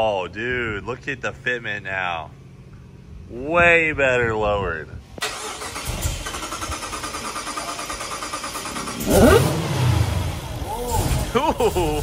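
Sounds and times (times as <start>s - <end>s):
supercharger whine: 4.6s - 12.0s
engine cranking on starter: 5.2s - 11.4s
engine starting with deep rumble: 5.2s - 12.0s.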